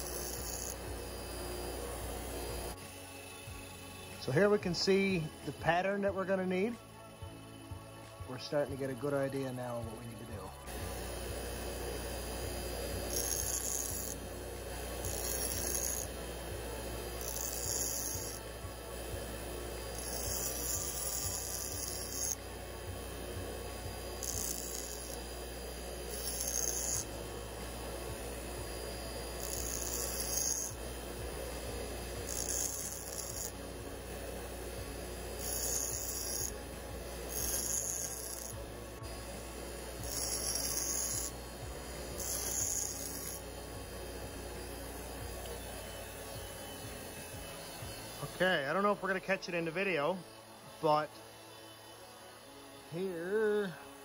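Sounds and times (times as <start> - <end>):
metal grinding hisses: 0.0 - 7.2, 8.3 - 54.0
bench grinder humming: 0.0 - 54.0.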